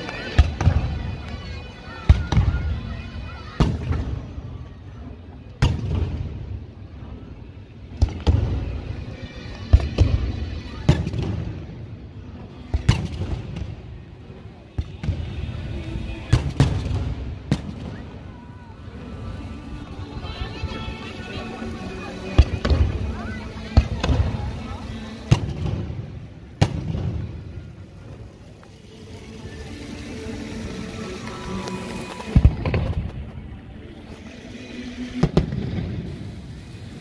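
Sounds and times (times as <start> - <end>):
fireworks bangs: 22.4 - 28.3, 31.6 - 33.4.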